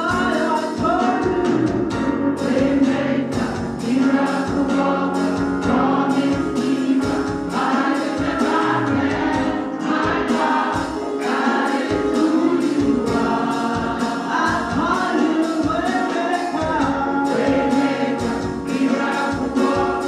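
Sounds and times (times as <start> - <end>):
steady percussive beat: 0.0 - 20.0
women's group singing gospel: 2.2 - 20.0.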